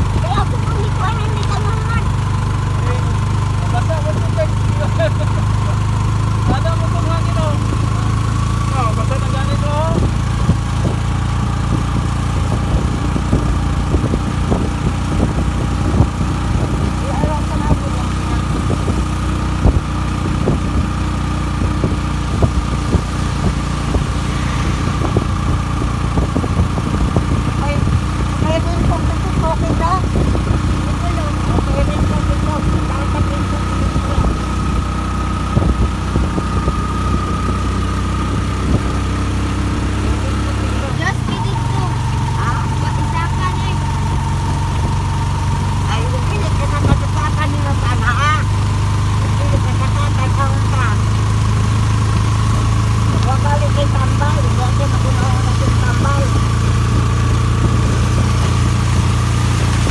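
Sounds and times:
vehicle engine running: 0:00.0 - 0:59.9.

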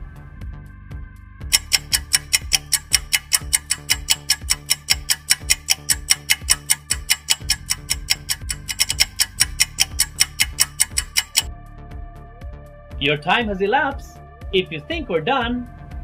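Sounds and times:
low bass beat: 0:00.0 - 0:16.0
fast clock ticking: 0:01.5 - 0:11.5.

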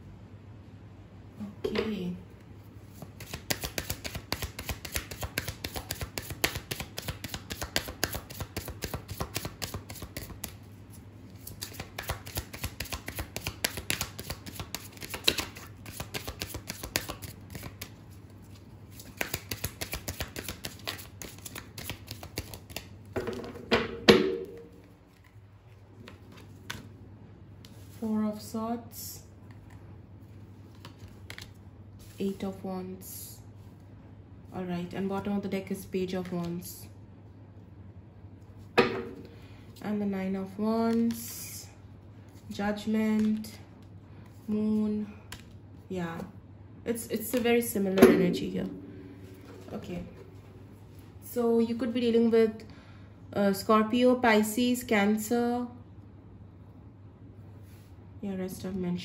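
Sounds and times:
cards being shuffled: 0:02.9 - 0:23.0, 0:24.7 - 0:26.9, 0:30.6 - 0:32.2, 0:43.1 - 0:43.4.

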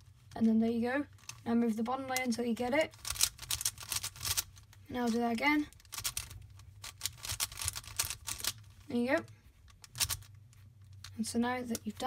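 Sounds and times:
plastic puzzle clicking: 0:02.2 - 0:04.5, 0:05.7 - 0:08.6, 0:09.8 - 0:10.3.

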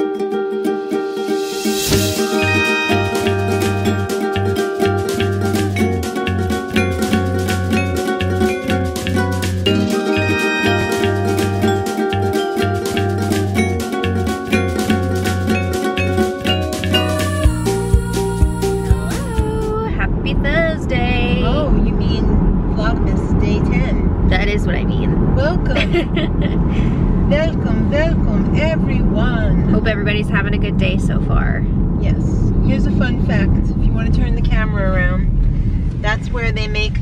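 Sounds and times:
car road and engine noise: 0:00.3 - 0:37.0
women talking: 0:18.9 - 0:26.6, 0:27.3 - 0:35.3, 0:36.0 - 0:37.0.

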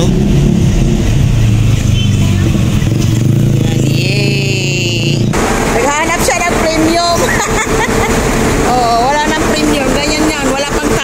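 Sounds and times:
car engine humming inside cabin: 0:00.0 - 0:11.0
outdoor noise: 0:00.0 - 0:11.0
voices: 0:01.4 - 0:11.0.

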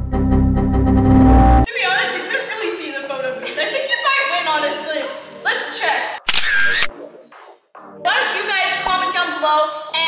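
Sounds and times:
camera shutter clicks: 0:06.2 - 0:06.9.

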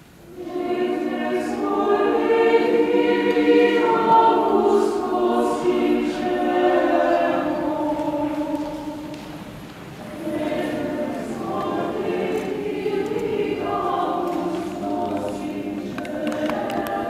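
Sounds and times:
choir singing: 0:00.2 - 0:17.0.

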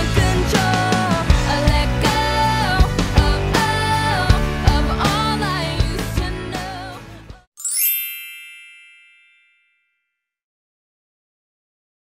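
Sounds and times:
song: 0:07.6 - 0:09.7
high bell-like ding: 0:07.6 - 0:10.2.

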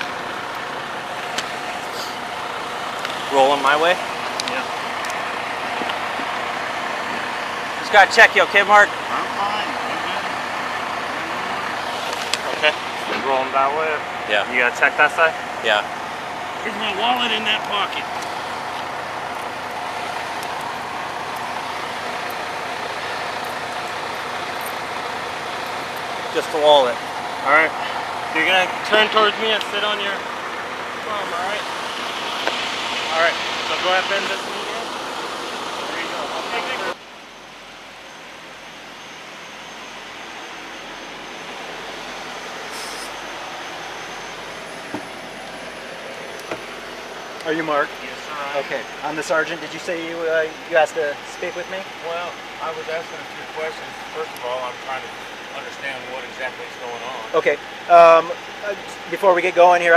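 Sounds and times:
vehicle engine idling: 0:00.0 - 0:59.9
short hiss: 0:42.7 - 0:43.2.

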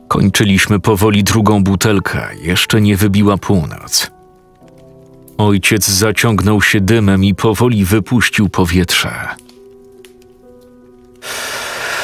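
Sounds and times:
soft background music: 0:00.0 - 0:12.0
breathy exhale of smoke: 0:11.2 - 0:12.0.

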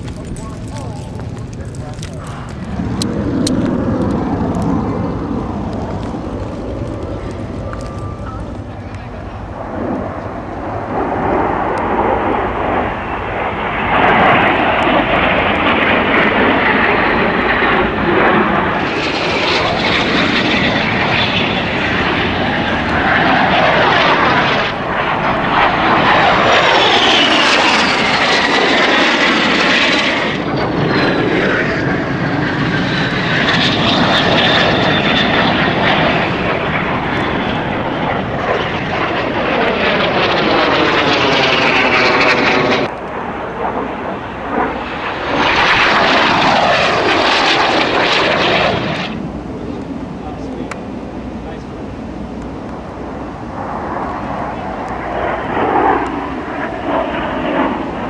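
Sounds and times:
jet engines passing overhead: 0:00.0 - 0:58.0.

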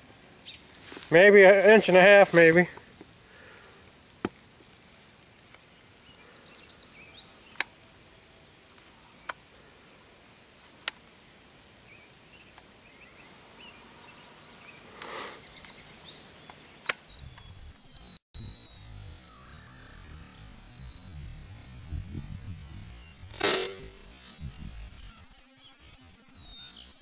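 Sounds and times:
bird chirping: 0:11.9 - 0:27.0.

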